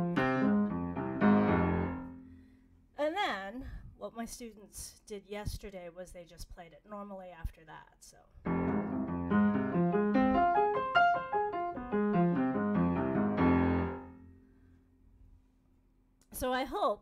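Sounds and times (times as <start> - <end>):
piano arpeggio: 0.0 - 2.3, 8.5 - 14.3.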